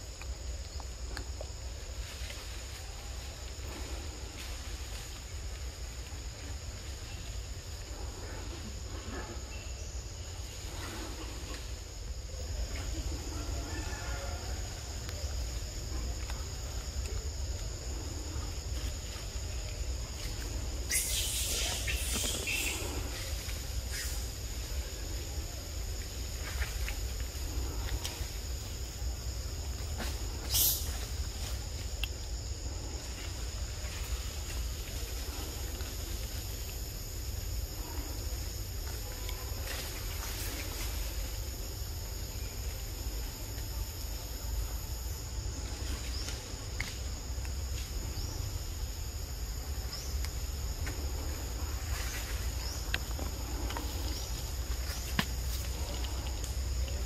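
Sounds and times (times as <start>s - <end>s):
high insect drone: 0.0s - 57.0s.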